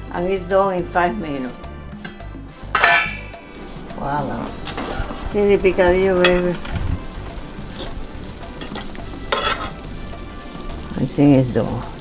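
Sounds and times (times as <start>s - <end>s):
background music: 0.0s - 12.0s
metal pan lid clanking: 2.0s - 3.6s, 4.6s - 9.9s.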